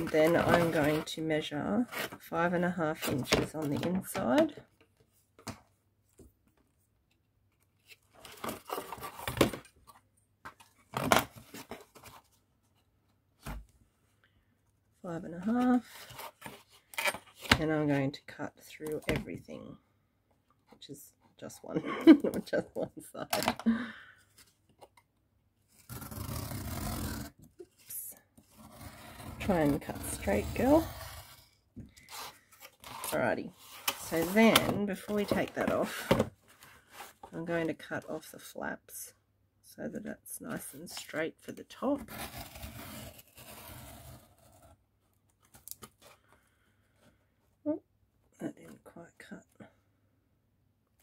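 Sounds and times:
knife cutting cardboard: 25.8 - 27.3
knife scraping cardboard: 25.8 - 27.3, 28.4 - 34.5.

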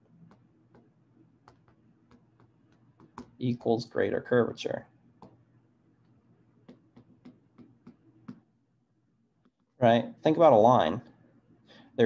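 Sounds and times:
stylus tapping glass screen: 0.2 - 3.4, 5.2 - 8.5.

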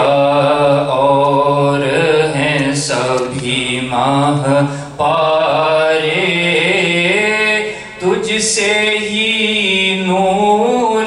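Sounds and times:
man chanting devotional recitation: 0.0 - 11.0.

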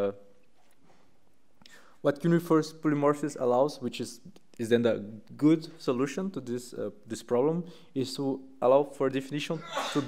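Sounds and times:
soft breath: 0.8 - 2.0
person speaking: 1.6 - 10.0
man saying uh: 9.4 - 10.0.

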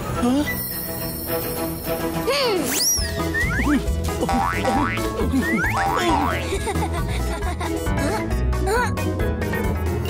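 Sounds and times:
background music: 0.0 - 10.0
cartoon boing effects: 4.3 - 6.5.

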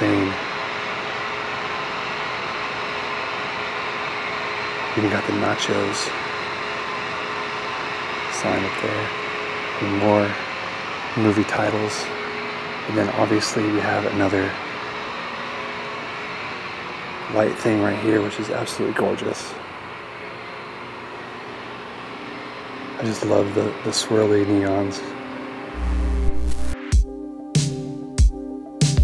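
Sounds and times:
neon lighting electrical hum: 0.0 - 28.0.

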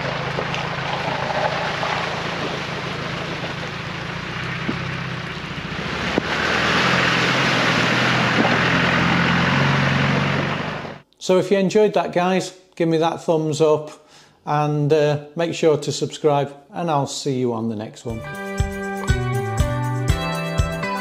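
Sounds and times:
car engine running: 0.0 - 11.0
vehicle moving through water and mud: 0.0 - 11.0.

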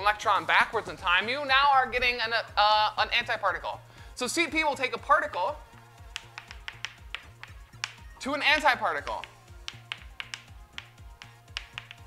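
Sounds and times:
quiet background music: 0.0 - 12.0
chalk tapping on blackboard: 5.7 - 12.0.

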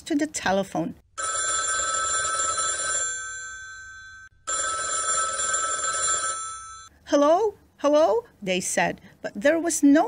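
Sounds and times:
electric telephone bell ringing: 1.2 - 6.9.

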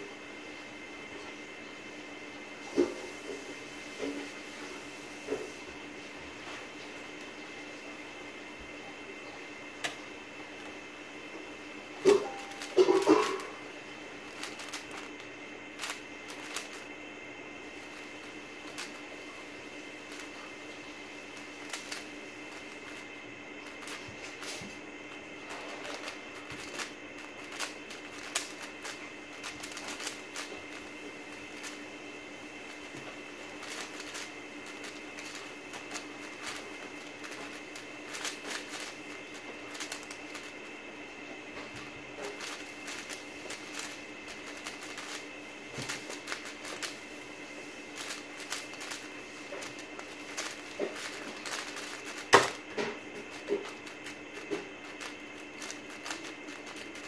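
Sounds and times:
plastic puzzle cube clicking: 14.3 - 15.1, 15.8 - 16.8, 18.7 - 19.0, 26.0 - 30.8, 33.6 - 39.0, 39.7 - 40.5, 42.4 - 45.2, 46.1 - 47.0, 48.0 - 52.6, 54.9 - 57.0.

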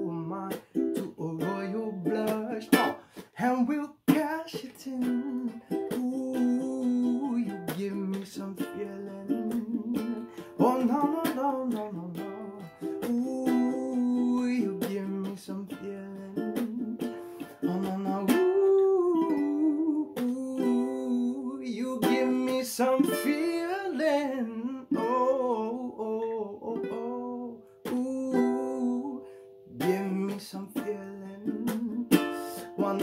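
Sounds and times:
man singing: 0.0 - 33.0
ukulele strumming: 0.0 - 33.0.

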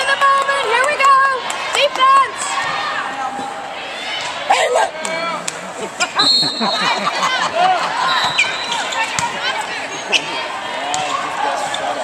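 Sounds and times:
spectators talking and calling: 0.0 - 12.0.

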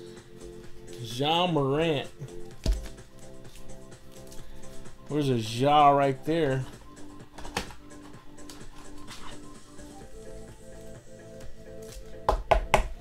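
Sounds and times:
soft background music: 0.0 - 13.0.

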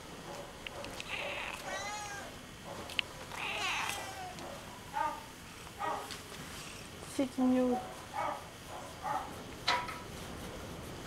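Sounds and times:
cat meowing: 1.1 - 2.4, 3.4 - 4.4.

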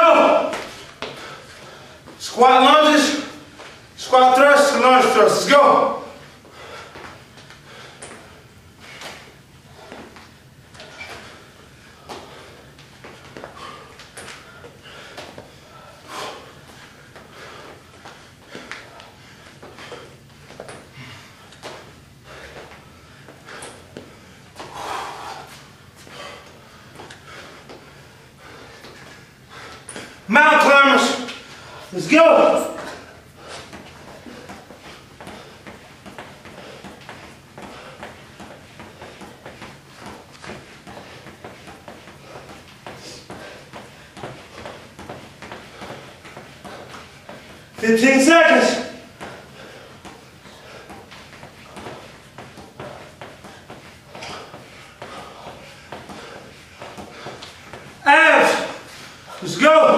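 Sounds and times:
man calling out loudly: 0.0 - 0.6, 2.2 - 3.4, 4.0 - 6.2, 30.3 - 31.3, 31.9 - 33.0, 47.8 - 49.0, 58.0 - 59.9.

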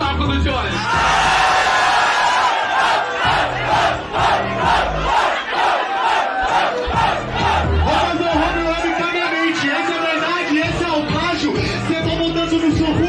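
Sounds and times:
crowd shouting rhythmically: 0.7 - 11.9.

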